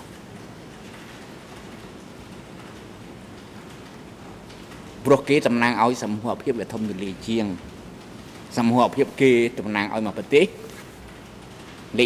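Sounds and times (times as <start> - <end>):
steady hiss: 2.1 - 12.0.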